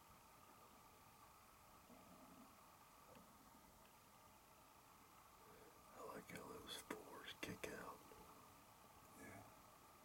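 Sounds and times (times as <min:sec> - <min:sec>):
faint whispering: 0:05.4 - 0:08.4, 0:09.1 - 0:09.6.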